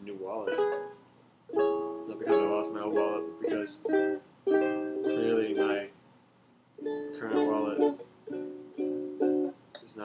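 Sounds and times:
ukulele chord strums: 0:00.1 - 0:05.9, 0:06.8 - 0:10.0.

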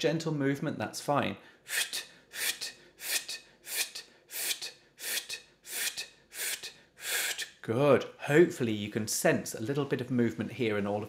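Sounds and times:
person spitting breathy f and t: 0:01.7 - 0:07.6.

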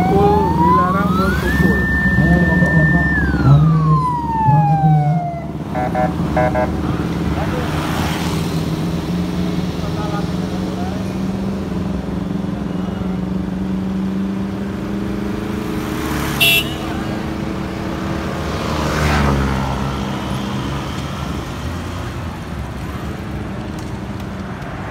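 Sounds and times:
vehicle engines running: 0:00.0 - 0:24.9
short sharp horn toot: 0:16.4 - 0:17.0.

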